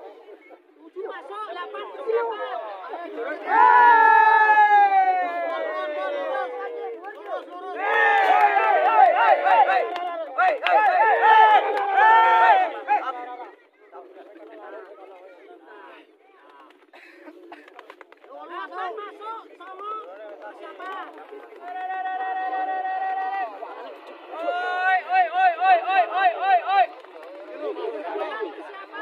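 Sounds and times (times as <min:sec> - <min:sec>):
crowd chatter: 0:00.0 - 0:29.0
men shouting drawn-out calls: 0:07.8 - 0:13.1, 0:24.4 - 0:26.9.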